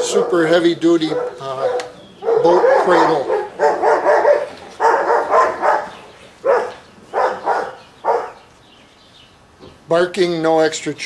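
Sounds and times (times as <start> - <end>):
dog barking: 0.0 - 8.4.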